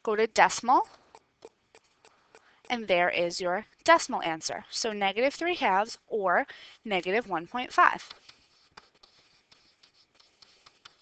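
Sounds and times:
stylus tapping and scratching: 0:00.5 - 0:03.9, 0:07.0 - 0:11.0.

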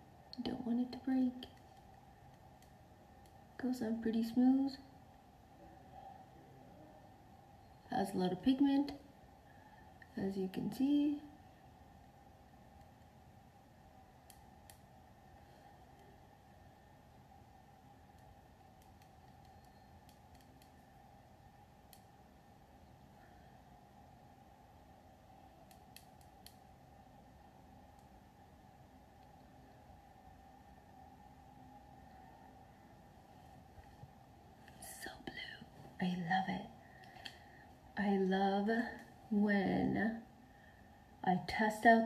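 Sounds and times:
steady low hum: 0:00.0 - 0:42.0.

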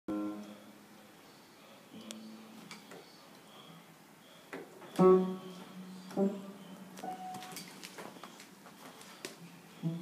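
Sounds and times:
piano notes: 0:00.1 - 0:01.0, 0:04.9 - 0:08.3, 0:09.8 - 0:10.0.

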